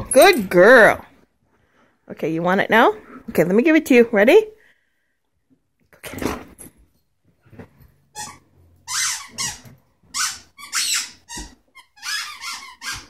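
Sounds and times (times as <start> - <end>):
squeaky toy squeaking: 8.1 - 13.0.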